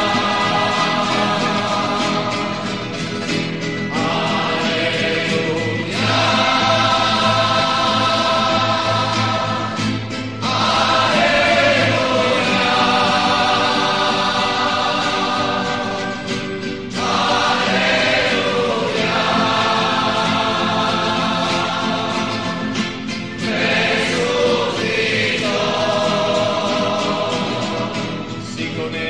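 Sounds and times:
choir singing a hymn: 0.0 - 29.0.

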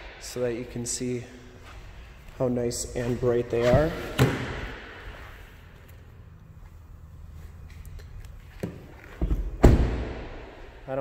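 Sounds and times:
low steady hum: 0.0 - 11.0
car door shutting: 8.6 - 10.4.

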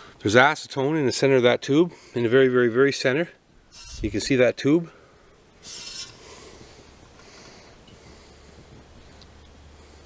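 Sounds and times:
faint steady hiss: 0.0 - 10.0
handling rubbing scrape: 3.7 - 4.3, 5.6 - 7.5.

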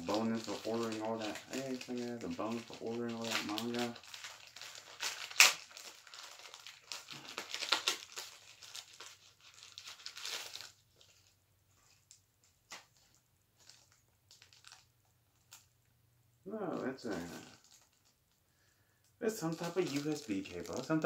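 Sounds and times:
plastic packaging crinkling and tearing: 0.0 - 15.7, 16.6 - 18.3, 19.2 - 21.0
faint rustles and clicks: 0.0 - 16.0, 16.7 - 21.0.

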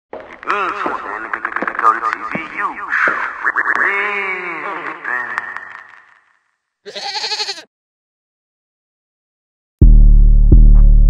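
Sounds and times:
goat bleating: 6.9 - 7.7.

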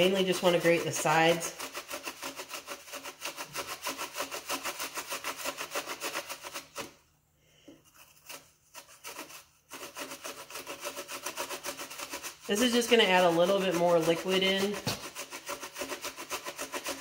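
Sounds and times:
apple grating on metal grater: 0.0 - 7.0, 7.9 - 17.0.

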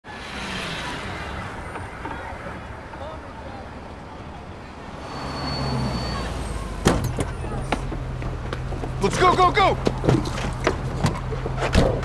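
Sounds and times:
city street noise: 0.0 - 12.0
brake squeal: 0.1 - 7.9.

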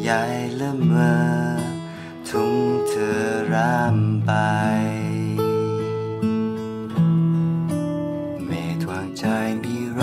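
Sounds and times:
man singing slow love song: 0.0 - 6.6, 8.3 - 10.0
acoustic guitar: 0.0 - 10.0.

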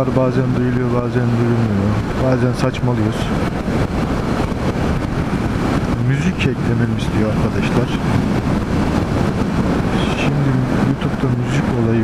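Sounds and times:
motorcycle running: 0.0 - 12.0
wind rush on microphone: 0.0 - 12.0.

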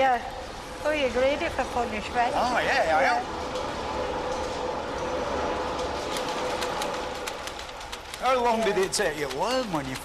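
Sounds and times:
machinery droning hum: 0.0 - 10.0
fast regular clacking: 5.7 - 10.0.

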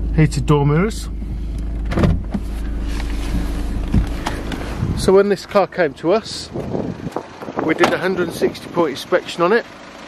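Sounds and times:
car low hum: 0.0 - 10.0
car door motor whirring: 1.6 - 5.0.

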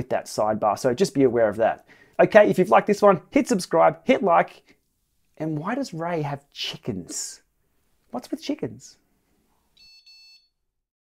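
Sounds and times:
faint buzzy electronic beep: 9.7 - 10.6.

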